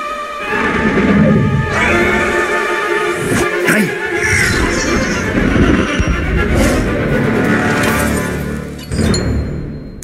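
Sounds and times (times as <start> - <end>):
orchestral score: 0.0 - 10.0
heavy low rumble: 4.2 - 7.7.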